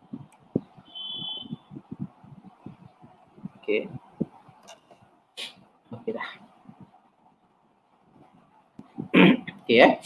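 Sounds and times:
high electronic beep: 0:00.9 - 0:01.6.

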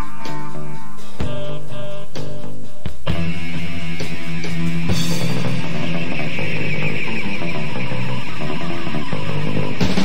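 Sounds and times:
guitar-driven punk rock instrumental: 0:00.0 - 0:10.0.

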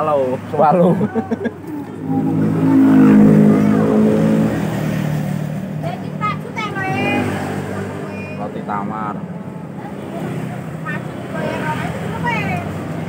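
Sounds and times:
vehicle engine passing by: 0:00.3 - 0:13.0.

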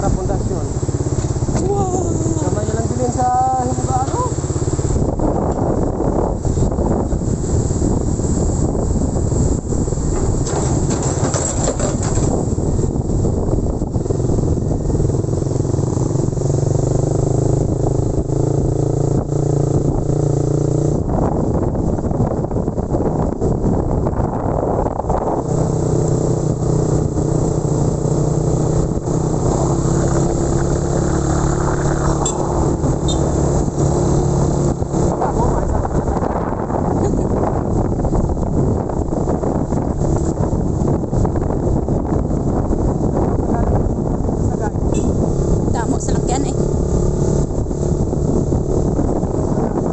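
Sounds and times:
small motorcycle engine running: 0:00.0 - 0:09.1, 0:10.2 - 0:21.1, 0:24.8 - 0:49.9.

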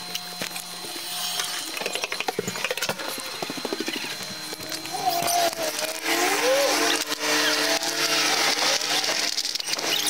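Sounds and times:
sped-up footsteps clatter: 0:02.1 - 0:04.9.

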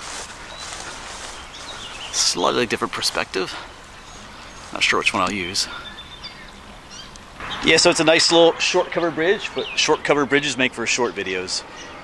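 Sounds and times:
faint bird chirps: 0:00.0 - 0:10.6
open air hiss: 0:00.0 - 0:12.0.

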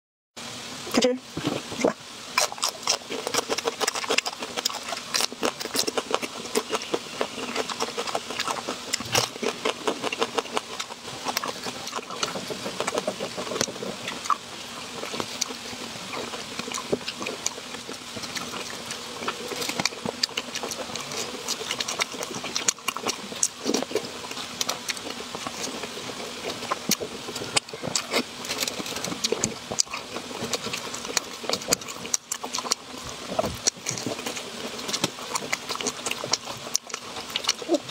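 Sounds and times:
crunchy chewing: 0:01.5 - 0:37.9.

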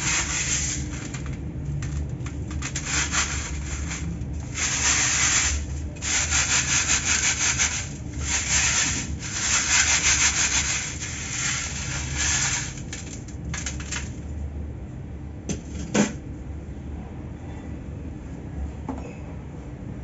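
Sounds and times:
cement scratching on wire mesh sieve: 0:00.0 - 0:14.2.

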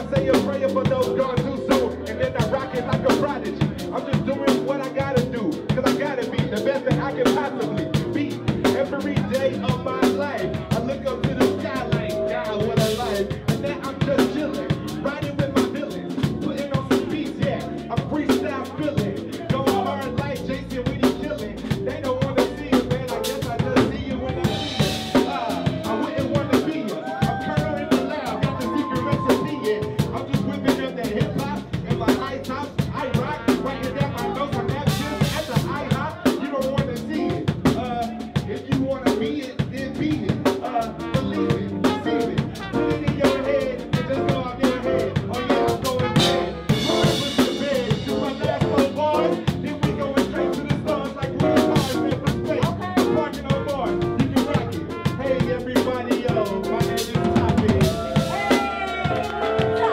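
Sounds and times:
hip-hop drum beat: 0:00.0 - 0:59.9
sustained bass and keyboard: 0:00.0 - 0:59.9.

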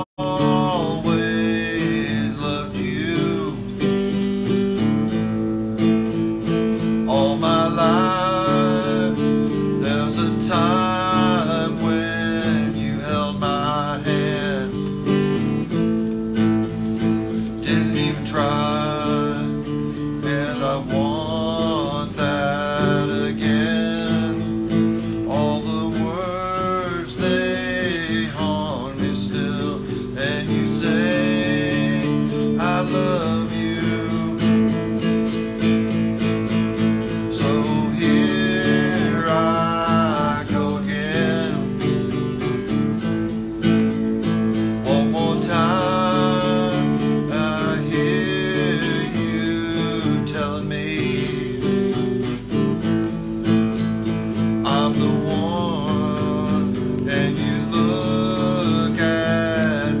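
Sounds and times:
man singing: 0:00.0 - 0:05.4, 0:06.0 - 1:00.0
acoustic guitar chords: 0:00.0 - 1:00.0.

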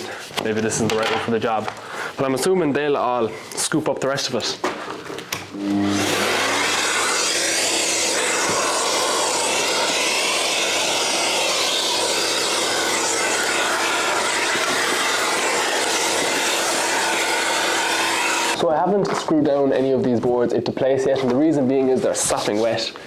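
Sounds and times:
vacuum cleaner running: 0:05.5 - 0:18.6.

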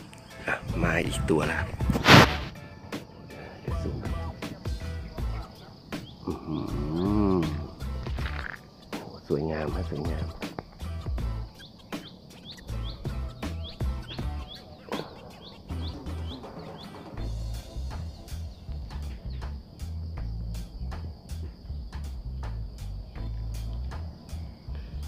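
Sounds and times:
high insect drone: 0:00.0 - 0:25.0
small bird chirping: 0:04.0 - 0:25.0.

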